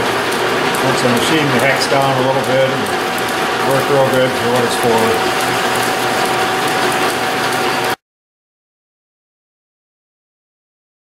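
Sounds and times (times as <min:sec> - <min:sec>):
metal lathe cutting whine: 0:00.0 - 0:08.0
crackle of metal chips: 0:00.3 - 0:08.0.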